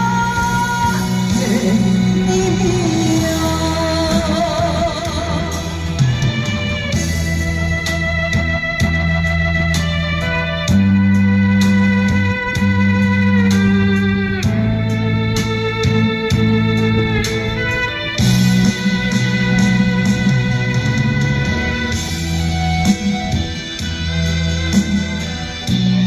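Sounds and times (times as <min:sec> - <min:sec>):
instrumental music with bass line: 0:00.0 - 0:26.0.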